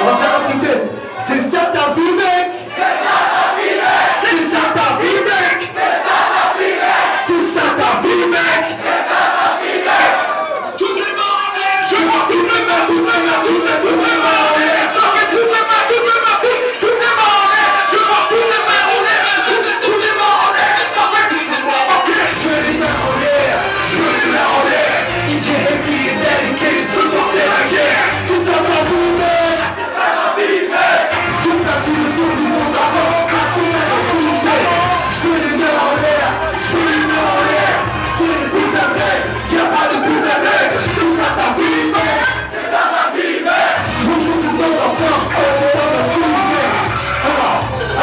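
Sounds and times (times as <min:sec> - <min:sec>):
crowd shouting: 0:02.6 - 0:48.0
man shouting into a microphone: 0:04.1 - 0:05.8, 0:07.2 - 0:08.8, 0:10.8 - 0:29.8, 0:31.2 - 0:42.4, 0:43.8 - 0:48.0
music beat: 0:11.8 - 0:29.8, 0:31.1 - 0:42.6, 0:43.7 - 0:48.0.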